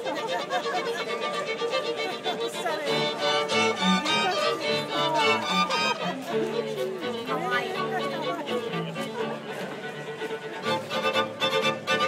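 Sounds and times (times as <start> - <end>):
faint chatter of voices: 0.0 - 12.0
string quartet playing: 0.0 - 12.0.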